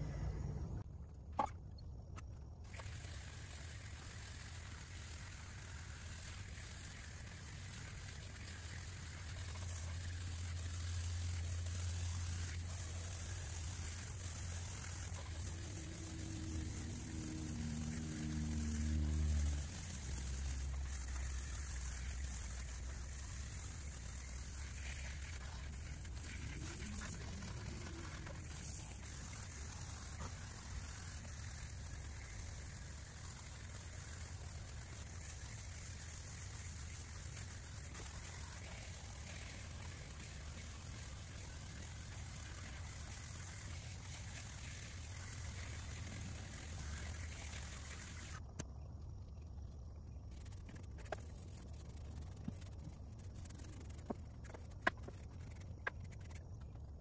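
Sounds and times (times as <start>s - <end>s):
low rumble: 0.0s - 0.8s
hose spray hissing on metal: 2.6s - 48.5s, 50.3s - 56.4s.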